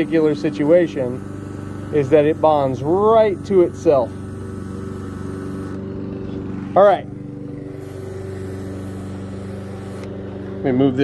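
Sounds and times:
small compressor motor humming: 0:00.0 - 0:11.0.

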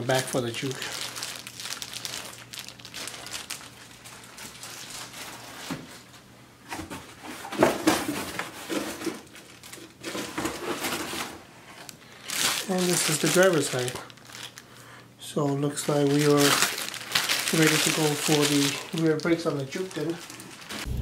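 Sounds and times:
plastic bag crinkling: 0:00.0 - 0:05.6, 0:12.1 - 0:14.7, 0:15.7 - 0:21.0.

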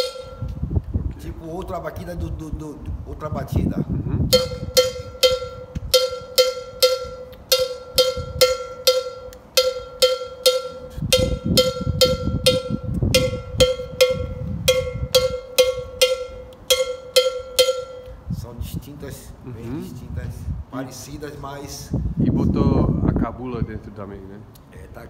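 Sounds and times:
cowbell struck with stick: 0:00.0 - 0:00.6, 0:04.3 - 0:18.2.

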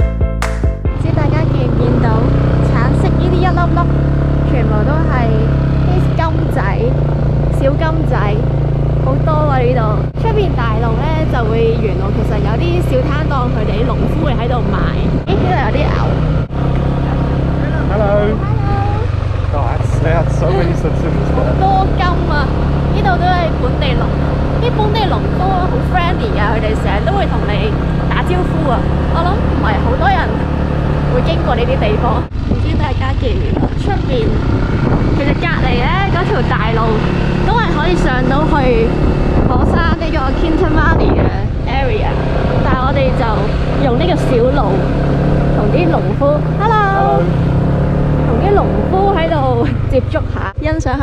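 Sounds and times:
motorbike engine running: 0:00.9 - 0:51.0
people talking: 0:01.0 - 0:45.0, 0:45.6 - 0:47.4, 0:48.2 - 0:51.0.

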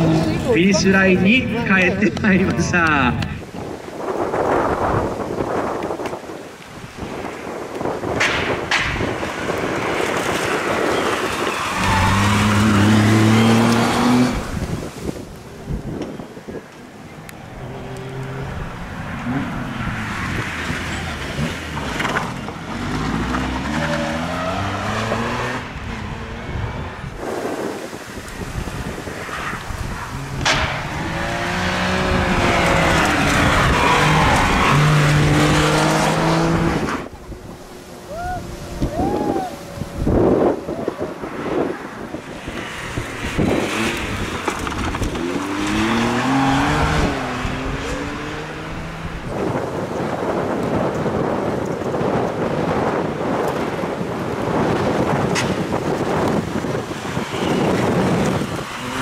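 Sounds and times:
rally car engines revving: 0:00.0 - 0:06.1, 0:06.9 - 0:15.2, 0:17.1 - 0:59.0
tyre squeal: 0:10.9 - 0:13.7.

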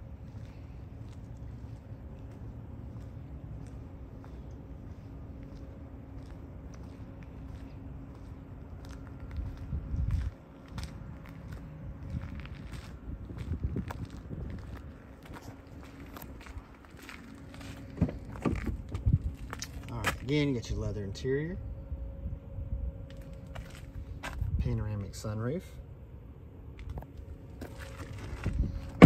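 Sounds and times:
footsteps on asphalt: 0:00.0 - 0:20.3, 0:23.1 - 0:24.6, 0:26.7 - 0:29.0
faint steady hum: 0:00.0 - 0:29.0
wind on microphone: 0:09.3 - 0:10.4, 0:11.5 - 0:15.0, 0:18.5 - 0:19.6, 0:28.4 - 0:29.0
car door opening: 0:17.9 - 0:18.9.

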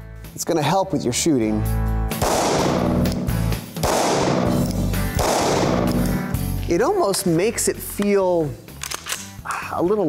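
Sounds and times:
background music: 0:00.0 - 0:10.0
pistol shots echoing: 0:02.2 - 0:06.3.

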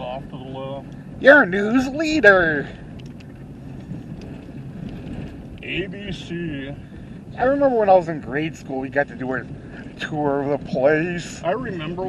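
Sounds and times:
car cabin road and engine noise: 0:00.0 - 0:12.0
faint ticks: 0:00.8 - 0:01.0, 0:02.9 - 0:05.7.

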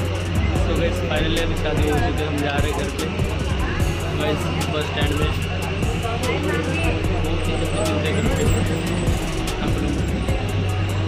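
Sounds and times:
background music with steady beat: 0:00.0 - 0:11.0
bus engine drone: 0:00.0 - 0:11.0
voices: 0:00.0 - 0:11.0.

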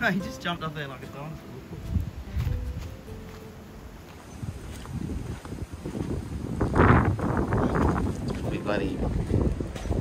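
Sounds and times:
wind buffeting microphone: 0:01.7 - 0:03.2, 0:04.2 - 0:10.0.

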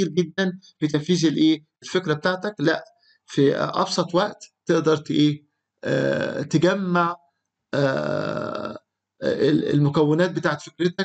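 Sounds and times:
man speaking: 0:00.0 - 0:07.2, 0:07.8 - 0:11.0
man's drawn-out hesitation sound: 0:00.0 - 0:07.2, 0:07.8 - 0:11.0.

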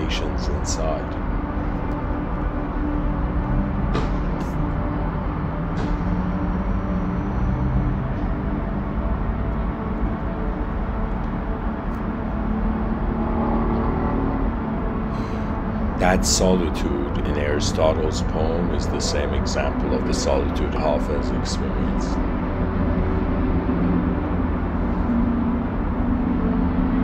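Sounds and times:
faint hum: 0:00.0 - 0:27.0
low rumble: 0:00.0 - 0:27.0.

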